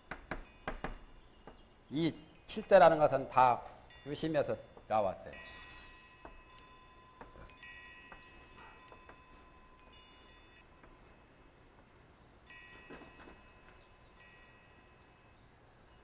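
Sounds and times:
high ringing tones: 0:00.4 - 0:16.0.

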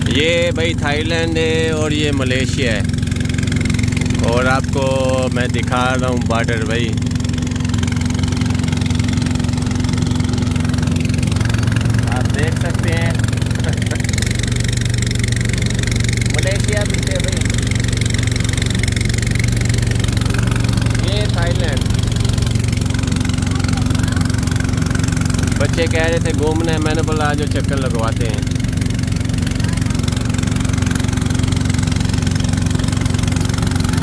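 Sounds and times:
boat engine running: 0:00.0 - 0:34.0
water noise: 0:00.0 - 0:34.0.

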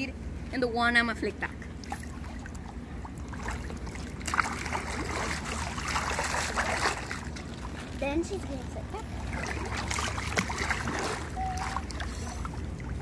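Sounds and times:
pool water splashing: 0:00.8 - 0:13.0.

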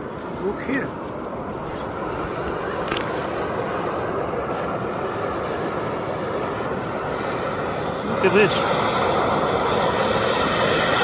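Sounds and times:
steam hissing from vent: 0:00.0 - 0:11.0.

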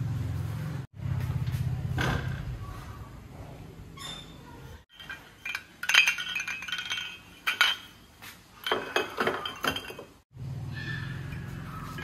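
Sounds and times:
glass light bulbs clinking: 0:04.9 - 0:10.2.

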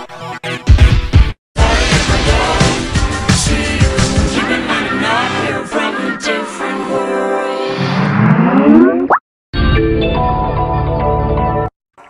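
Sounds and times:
distorted jingle with gliding tones: 0:07.6 - 0:09.2.

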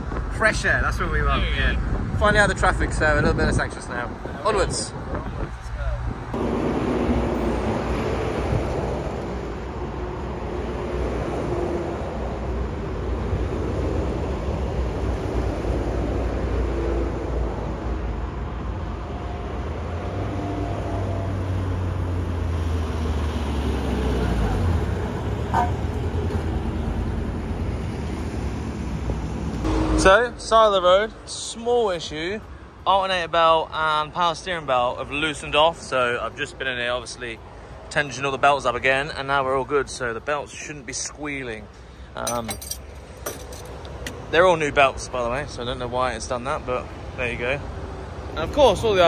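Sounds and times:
motorway traffic: 0:00.0 - 0:49.0.

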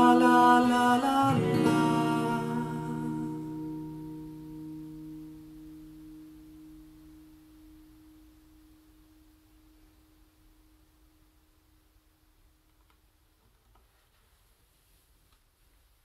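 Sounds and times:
acoustic guitar chord ringing: 0:00.0 - 0:11.4.

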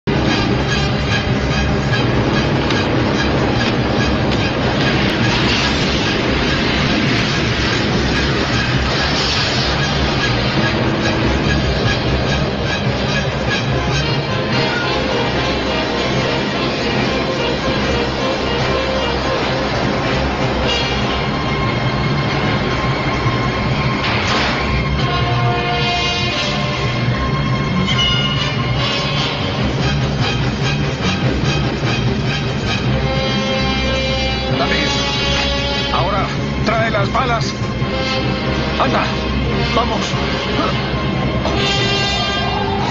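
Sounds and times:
heavy truck engine rumble: 0:00.0 - 0:42.9.

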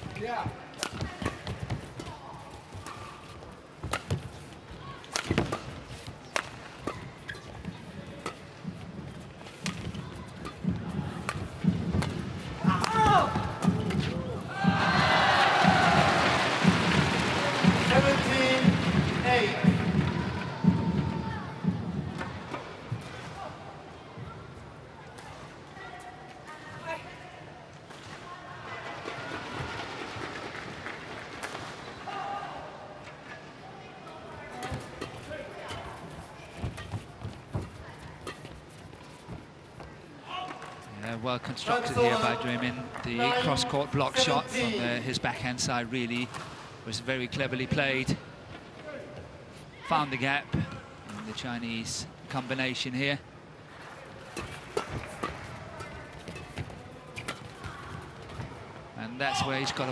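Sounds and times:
racket hitting shuttlecock: 0:03.8 - 0:04.3, 0:05.0 - 0:08.8, 0:09.5 - 0:15.0, 0:34.6 - 0:38.6, 0:54.3 - 0:58.4
crowd cheering and shouting: 0:14.5 - 0:18.5, 0:19.9 - 0:21.8.

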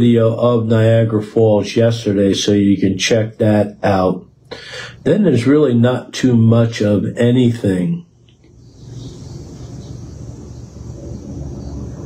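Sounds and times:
low steady rumbling: 0:00.0 - 0:12.0.

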